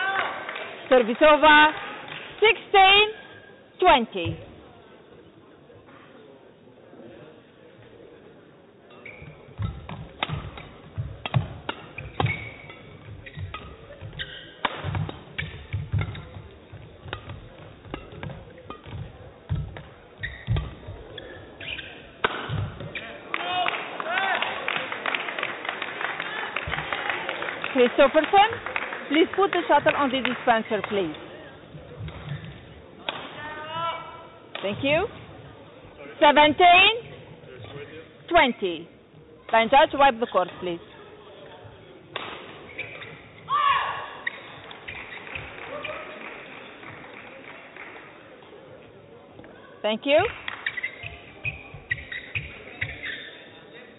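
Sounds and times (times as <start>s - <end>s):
steady murmur in hall: 0.0s - 53.9s
short high squeaks: 8.9s - 9.8s, 11.8s - 14.6s, 20.2s - 22.1s, 42.6s - 43.2s, 50.6s - 53.6s
shoes squeaking on court: 8.9s - 23.2s, 27.7s - 33.0s, 33.7s - 43.5s, 44.1s - 47.0s, 49.4s - 53.9s
shuttlecock hits: 9.6s - 19.9s, 22.2s - 23.0s, 42.1s - 43.1s.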